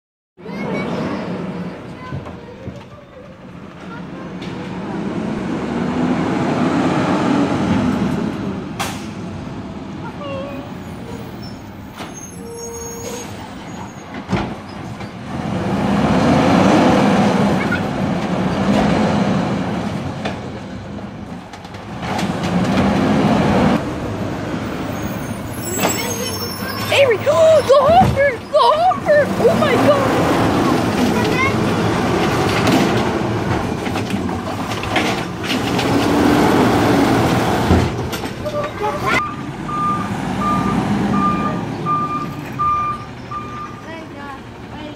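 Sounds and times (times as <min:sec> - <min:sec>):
garbage truck diesel engine revving: 0:04.4 - 0:10.0, 0:14.7 - 0:27.8, 0:28.4 - 0:44.7.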